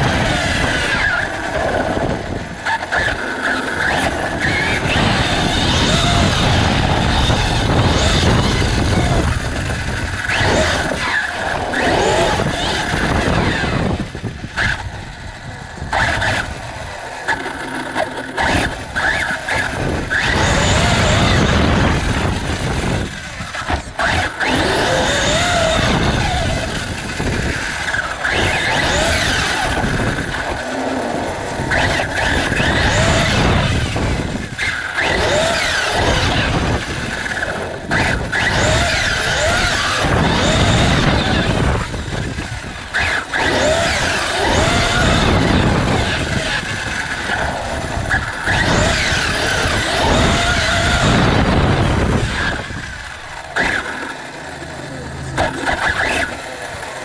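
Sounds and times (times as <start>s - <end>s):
rc car motor whining: 0.0s - 57.0s
tyres and chassis rattling: 0.0s - 57.0s.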